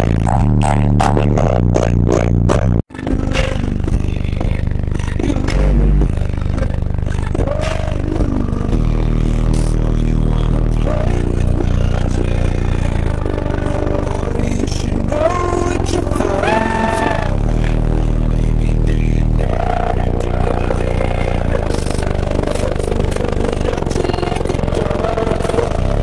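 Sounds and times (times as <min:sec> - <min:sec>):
bass-heavy music through subwoofers: 0:00.0 - 0:26.0.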